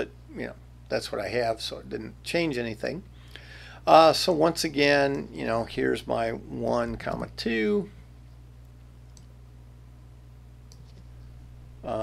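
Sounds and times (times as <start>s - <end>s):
low room hum: 0.0s - 12.0s
faint computer mouse clicks: 9.1s - 9.3s, 10.7s - 11.1s.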